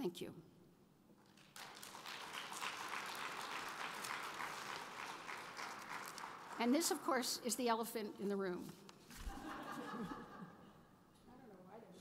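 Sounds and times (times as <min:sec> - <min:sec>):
audience applauding: 0:01.2 - 0:07.0.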